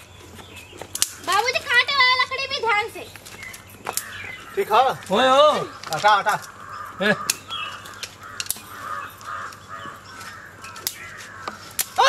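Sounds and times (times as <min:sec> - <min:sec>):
sharp clicks: 0:00.9 - 0:01.5, 0:03.4 - 0:04.3
crows cawing: 0:03.5 - 0:12.0.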